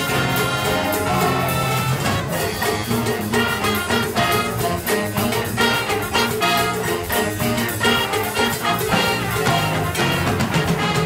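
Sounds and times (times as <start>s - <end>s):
big band playing swing jazz: 0.0s - 11.0s
brass section: 0.0s - 11.0s
drums and cymbals: 0.0s - 11.0s.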